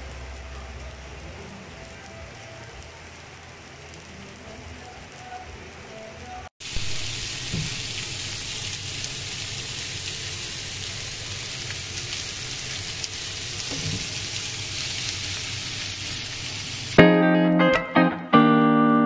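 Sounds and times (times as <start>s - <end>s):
meat sizzling in a skillet: 6.6s - 17.0s
meat skewers sizzling on a grill pan: 6.6s - 17.0s.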